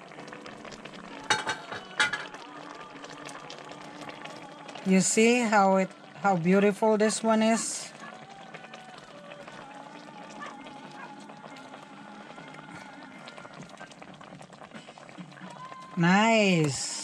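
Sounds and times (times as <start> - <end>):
faint background music: 0.0 - 17.0.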